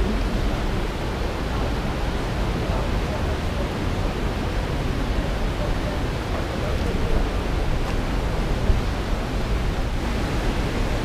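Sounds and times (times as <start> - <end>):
river water rushing over weir: 0.0 - 11.0.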